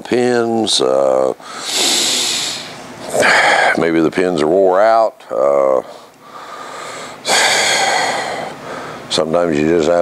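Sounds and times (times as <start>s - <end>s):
man breathing: 1.4s - 3.8s, 5.9s - 9.1s.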